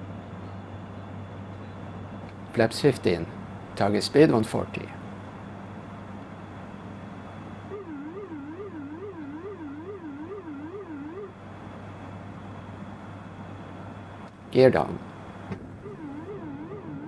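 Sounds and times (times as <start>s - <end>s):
cockpit hum: 1.8s - 17.0s
electronic warbling tone: 7.7s - 11.3s, 15.8s - 17.0s.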